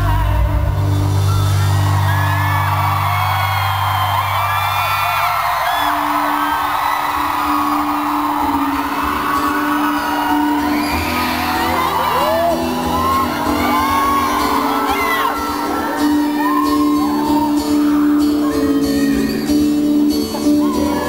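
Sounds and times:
audience whooping and cheering: 0.0s - 21.0s
live rock band music: 0.0s - 21.0s.

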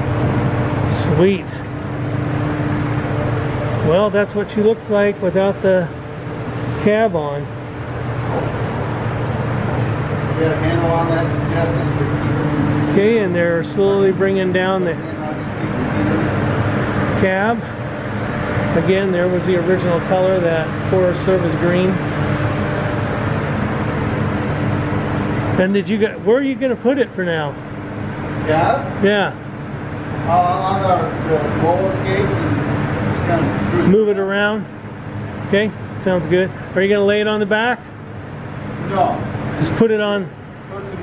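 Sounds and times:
low machine hum: 0.0s - 41.0s.

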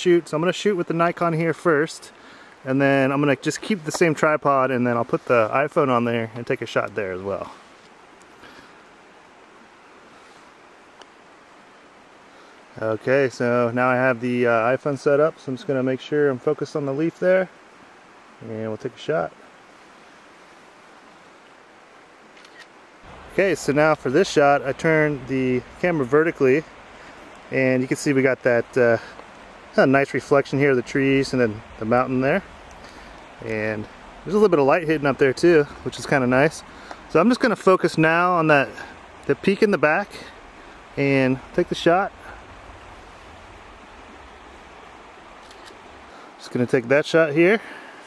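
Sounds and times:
faint outdoor background hiss: 0.0s - 48.0s
water flowing: 0.0s - 48.0s
camera shutter clicks: 45.4s - 45.8s.

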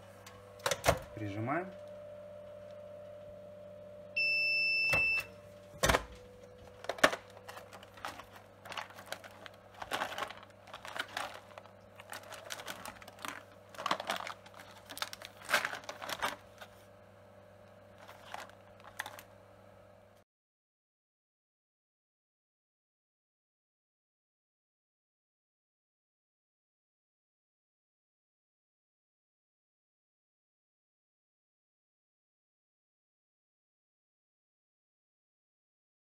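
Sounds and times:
machine humming with cooling fan: 0.0s - 20.2s
loud beep: 4.2s - 5.4s
plastic tray and film crinkling: 5.7s - 16.9s, 17.9s - 19.4s.

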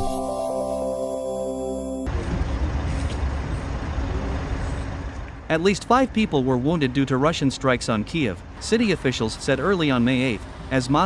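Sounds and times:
low traffic rumble: 2.1s - 11.0s.

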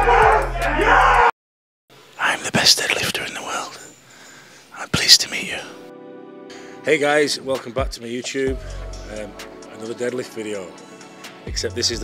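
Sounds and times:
steady music: 5.8s - 12.0s
man speaking into microphone: 11.5s - 12.0s.

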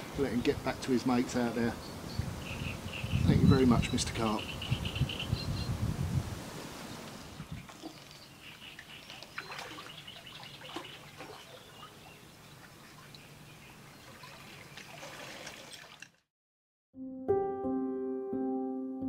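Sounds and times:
water trickling and splashing: 6.6s - 16.3s.

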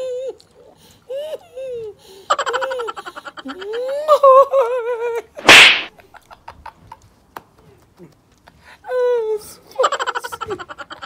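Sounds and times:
woman laughing and wailing: 1.1s - 5.4s, 8.9s - 11.0s.

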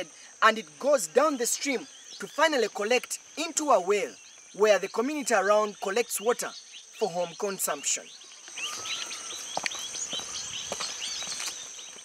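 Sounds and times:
bird chirps and calls: 0.0s - 12.0s
high-pitched insect drone: 0.0s - 12.0s.

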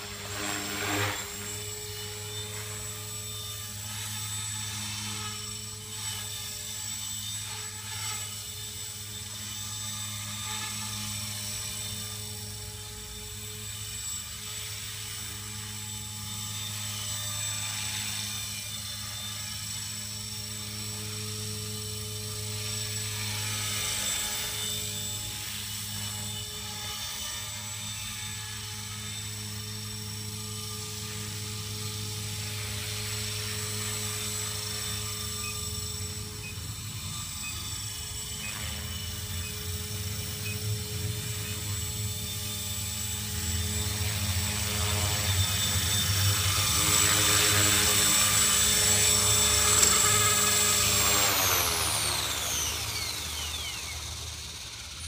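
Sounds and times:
rc helicopter rotor whine: 0.0s - 55.0s.

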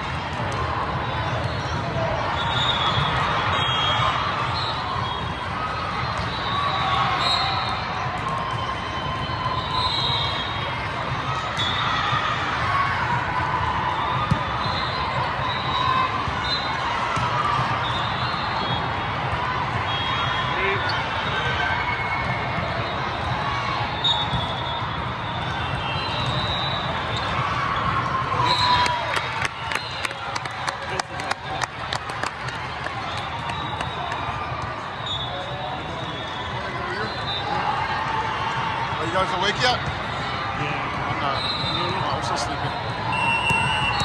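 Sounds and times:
many voices in a hall: 0.0s - 44.0s
volleyball strike: 14.0s - 15.2s.

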